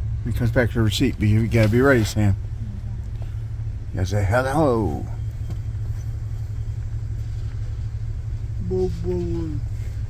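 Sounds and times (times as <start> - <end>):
minivan engine idling: 0.0 - 10.0.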